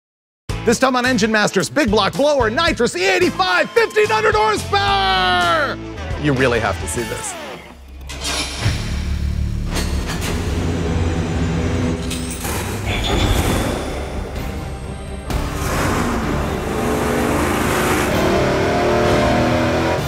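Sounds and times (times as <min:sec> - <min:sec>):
music: 0:00.5 - 0:20.0
race engine running hard: 0:15.4 - 0:20.0.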